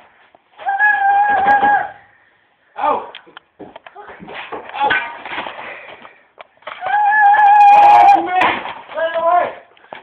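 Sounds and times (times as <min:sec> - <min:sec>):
person yelling: 0:06.8 - 0:09.6.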